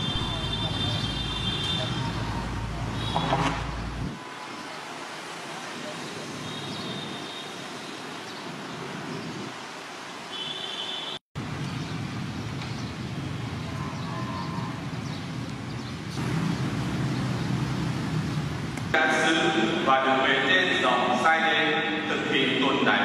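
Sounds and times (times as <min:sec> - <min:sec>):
distant traffic hum: 0:00.0 - 0:23.0.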